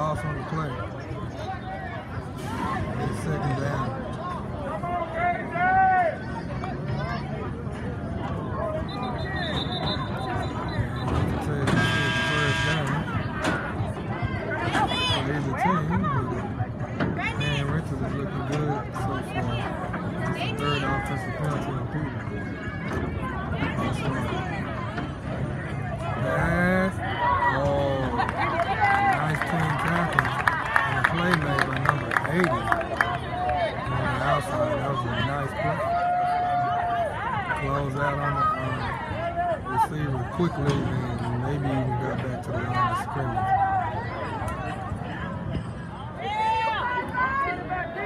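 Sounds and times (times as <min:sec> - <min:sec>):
crowd chatter: 0:00.0 - 0:48.0.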